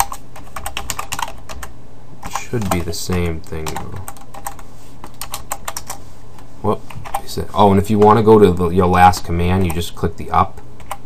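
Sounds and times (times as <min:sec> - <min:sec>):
computer keyboard typing: 0:00.0 - 0:06.0, 0:07.0 - 0:11.0.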